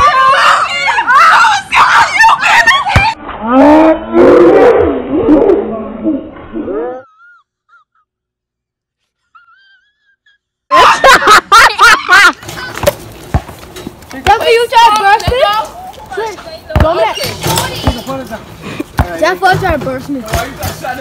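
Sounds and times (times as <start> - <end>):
people shouting and yelling: 0.0 - 5.7, 14.2 - 21.0
deep moaning voice: 3.4 - 7.1.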